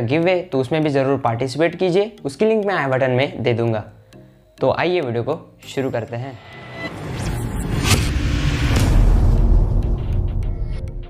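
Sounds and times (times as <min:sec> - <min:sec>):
sweeping whooshes: 0:06.2 - 0:10.9
deep rumble: 0:06.9 - 0:11.0.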